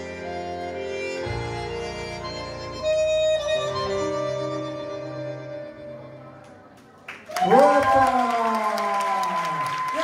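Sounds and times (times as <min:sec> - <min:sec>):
audience clapping: 0:06.8 - 0:10.0
audience whooping: 0:07.3 - 0:10.0.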